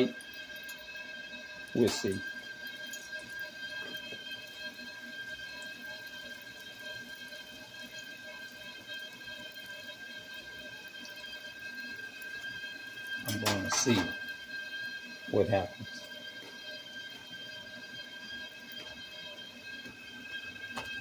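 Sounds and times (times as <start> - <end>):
high-pitched whine: 0.0 - 5.7, 10.4 - 21.0
dough sizzling in hot oil: 0.0 - 21.0.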